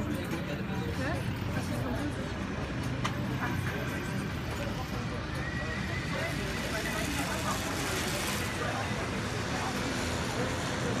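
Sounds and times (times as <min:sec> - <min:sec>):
traffic hum: 0:00.0 - 0:11.0.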